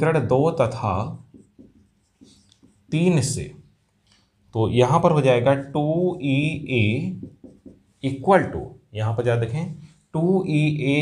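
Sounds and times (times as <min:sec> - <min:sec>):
marker writing on whiteboard: 0:00.6 - 0:03.6, 0:07.0 - 0:08.3.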